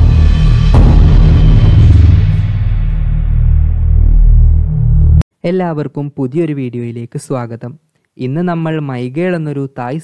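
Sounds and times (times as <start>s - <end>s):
deep bass rumble: 0.0s - 5.2s.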